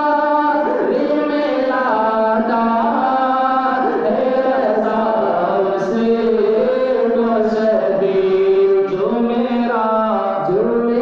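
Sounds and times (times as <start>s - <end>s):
men singing devotional song: 0.0s - 11.0s.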